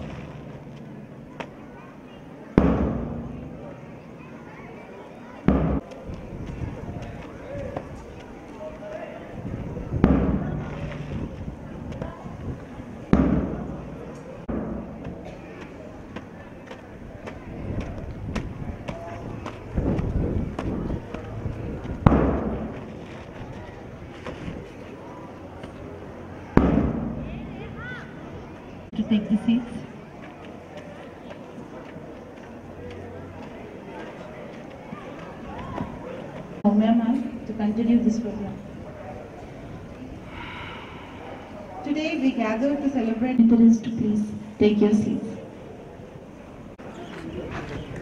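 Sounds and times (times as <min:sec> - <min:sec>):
faint voices: 0:00.0 - 0:48.0
loud thump: 0:02.6 - 0:03.5, 0:05.5 - 0:05.8, 0:14.5 - 0:15.2, 0:26.6 - 0:27.5
loud sharp bangs: 0:02.6 - 0:03.7, 0:05.5 - 0:05.9, 0:10.0 - 0:11.0, 0:13.1 - 0:15.8, 0:22.0 - 0:22.8, 0:26.5 - 0:27.8.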